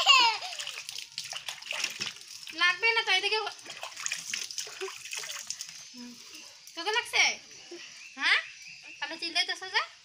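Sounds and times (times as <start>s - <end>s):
small child crying: 0.0s - 0.8s
water splashing and dribbling: 0.0s - 7.2s.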